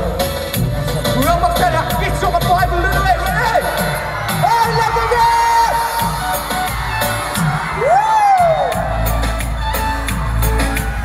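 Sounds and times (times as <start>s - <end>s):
crowd noise: 0.0s - 11.0s
live music with heavy bass beat: 0.0s - 11.0s
high whoop: 7.4s - 9.2s.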